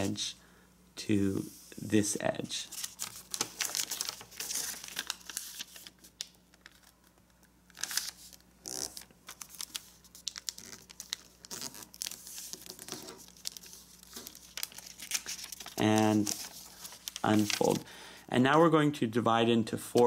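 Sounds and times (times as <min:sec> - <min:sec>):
paper rustling and crinkling: 0:02.7 - 0:17.8.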